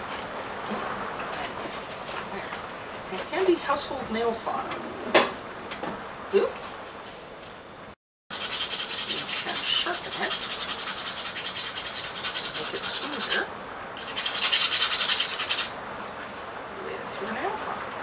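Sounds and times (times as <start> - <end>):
nail file rasping on steel: 8.3 - 15.7.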